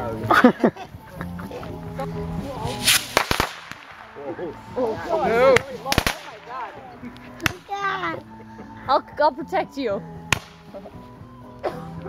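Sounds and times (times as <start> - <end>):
firework hissing whoosh: 2.6 - 6.7
sharp firework pops: 2.7 - 4.3, 5.5 - 7.7, 10.3 - 10.8.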